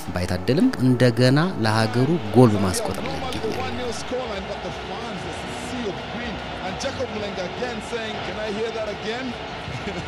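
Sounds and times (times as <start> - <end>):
crowd voices calling: 0.3 - 10.0
crowd roar: 1.5 - 10.0.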